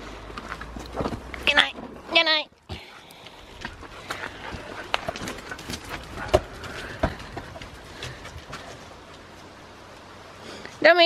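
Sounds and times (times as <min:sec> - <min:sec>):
dogs scuffling on gravel: 0:03.2 - 0:10.0.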